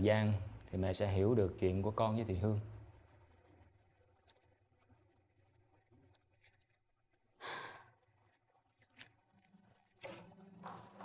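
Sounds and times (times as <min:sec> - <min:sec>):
woman sighing: 0:07.4 - 0:07.9.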